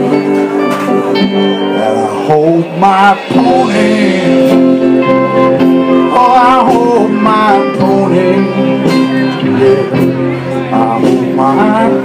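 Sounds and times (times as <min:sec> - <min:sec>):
country folk band playing: 0:00.0 - 0:12.0
pitch-bending lead melody: 0:00.0 - 0:12.0.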